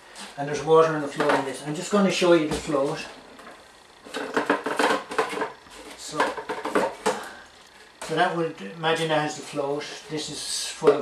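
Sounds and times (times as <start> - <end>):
plastic containers clattering on wood: 1.2 - 1.6, 4.1 - 7.4.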